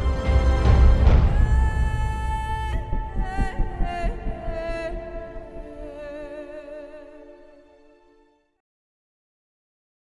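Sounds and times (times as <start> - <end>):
orchestral strings: 0.0 - 2.7, 4.5 - 8.5.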